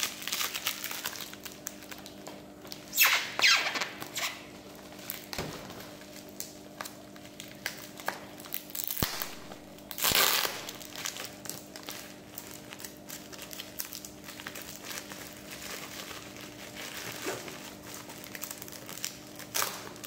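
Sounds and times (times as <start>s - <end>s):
bubble wrap crinkling: 0.0s - 20.0s.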